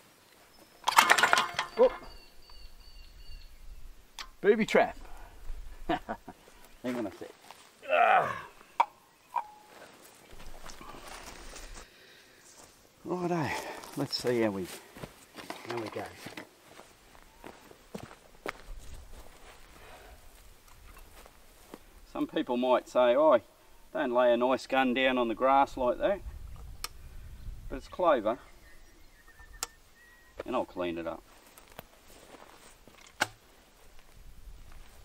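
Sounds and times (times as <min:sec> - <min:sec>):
shotgun handling clicks and knocks: 0:00.8 - 0:02.1, 0:04.2 - 0:04.4, 0:32.9 - 0:33.4
footsteps through grass: 0:04.9 - 0:07.8, 0:09.6 - 0:22.2, 0:31.2 - 0:35.0
faint rustling: 0:09.6 - 0:12.8.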